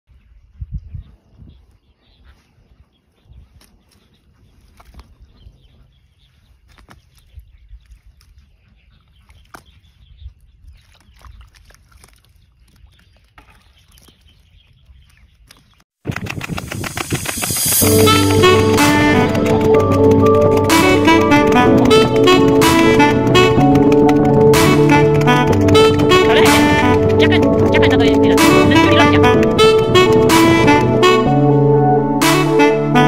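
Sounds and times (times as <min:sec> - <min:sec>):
low rumble: 0:16.6 - 0:32.2
jazz music with saxophone: 0:16.9 - 0:33.0.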